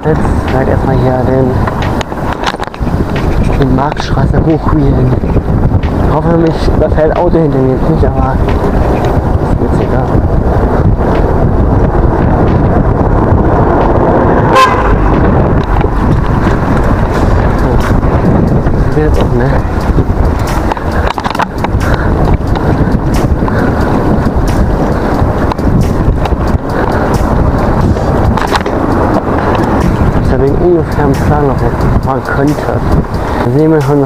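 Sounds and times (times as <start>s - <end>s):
bike tyre rumble: 0.0s - 34.0s
wind rushing on microphone: 0.0s - 34.0s
bike frame rattle: 0.4s - 34.0s.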